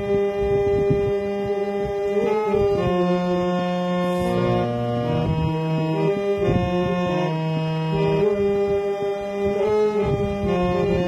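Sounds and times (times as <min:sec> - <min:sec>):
harmonium chord: 0:00.0 - 0:11.0.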